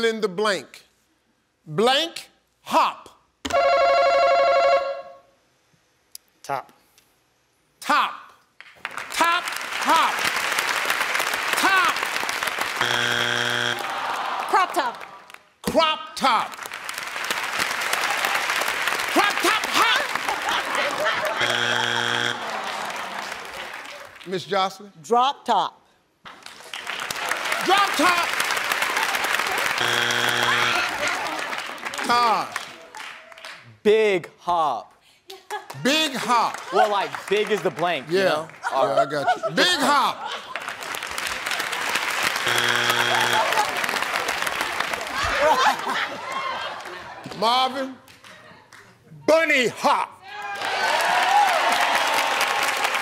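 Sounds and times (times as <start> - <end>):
game show buzzer tone: 3.5 - 5.3, 12.7 - 14.0, 21.2 - 22.8, 29.7 - 31.1, 42.4 - 43.8
audience applause: 8.8 - 15.5, 16.5 - 24.3, 26.3 - 33.6, 36.1 - 39.0, 40.2 - 47.3, 50.4 - 53.0.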